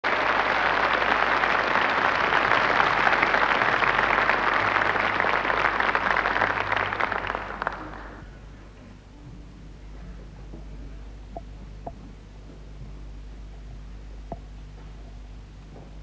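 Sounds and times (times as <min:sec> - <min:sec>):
audience applauding: 0:00.0 - 0:08.4.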